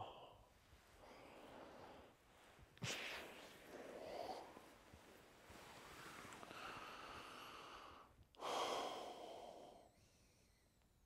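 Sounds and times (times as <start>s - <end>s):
person breathing heavily: 6.5s - 10.5s.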